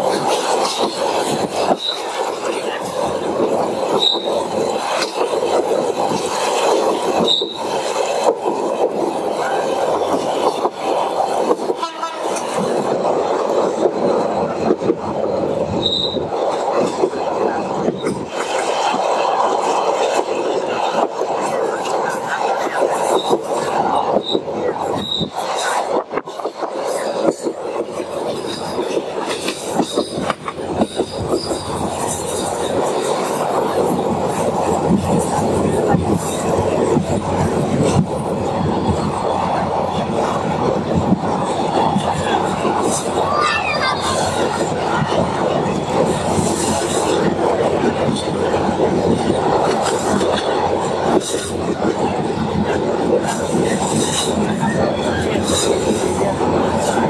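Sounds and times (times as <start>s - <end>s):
train wheels rattling and clattering: 0.0s - 57.0s.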